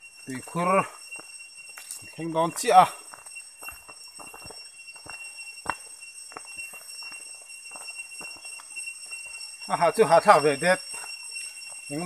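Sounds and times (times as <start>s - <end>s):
faint high whine: 0.0s - 12.0s
footsteps on forest trail: 0.0s - 12.0s.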